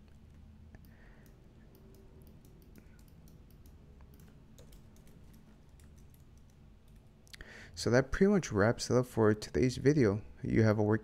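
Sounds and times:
keyboard and mouse clicking: 0.8 - 7.4.

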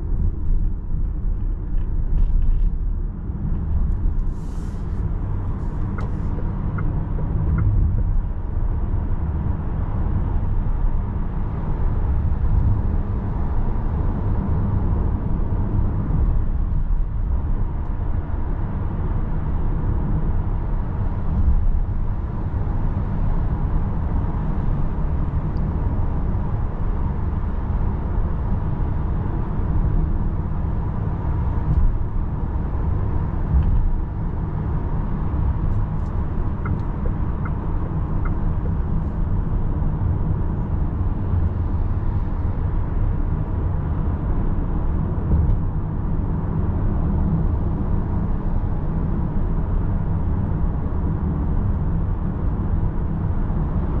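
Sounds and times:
road and tyre rumble: 0.0 - 54.0.

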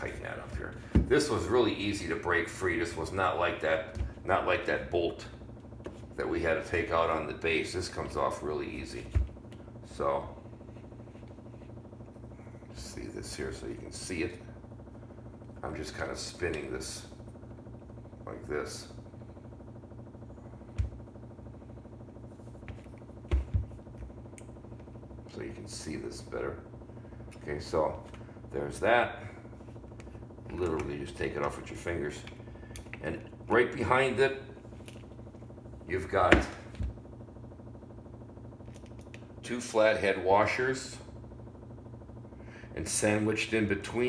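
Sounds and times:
low steady hum: 0.0 - 44.0.

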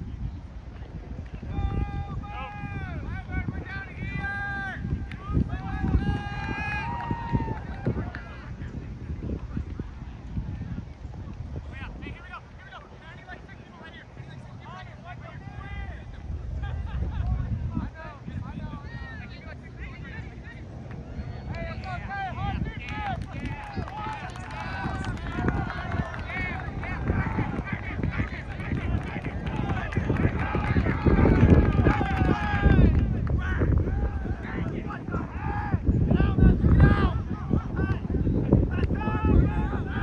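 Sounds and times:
wind buffeting microphone: 0.0 - 40.0.

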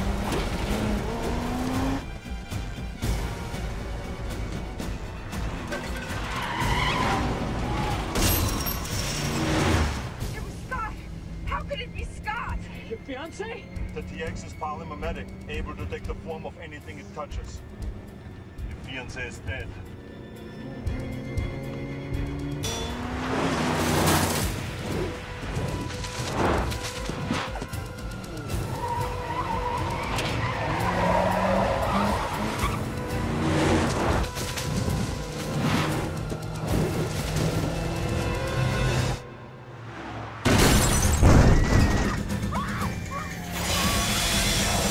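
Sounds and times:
car engine running: 0.0 - 5.7
film score music: 0.0 - 44.9
car tyres screeching: 5.4 - 10.2, 19.7 - 39.2, 41.4 - 44.9.

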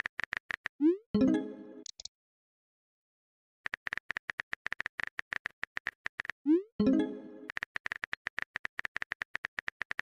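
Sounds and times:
phone keyboard typing clicks: 7.5 - 10.0.

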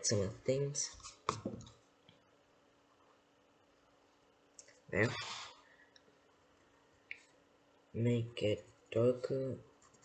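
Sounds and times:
person speaking a word: 5.0 - 5.5.

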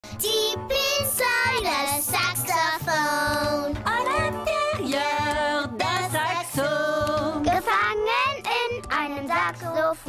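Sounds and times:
light instrumental backing: 0.1 - 10.0
child singing: 0.2 - 5.1, 6.1 - 10.0.

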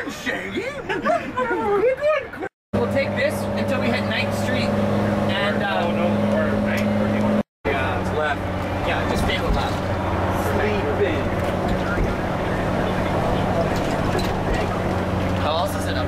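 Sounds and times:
bus engine and road drone: 0.0 - 16.0.

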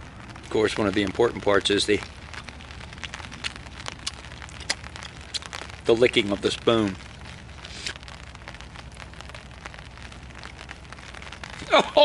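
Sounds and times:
rain pattering on a tarp: 0.0 - 12.0.

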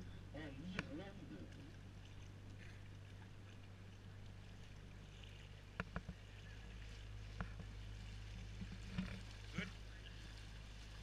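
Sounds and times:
boat motor humming: 0.0 - 11.0
water washing past hull: 0.0 - 11.0.

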